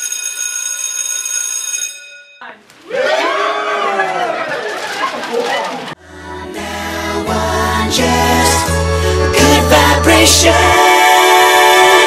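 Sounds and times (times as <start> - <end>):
school bell ringing: 0.0 - 2.6
voices singing in harmony: 6.0 - 12.0.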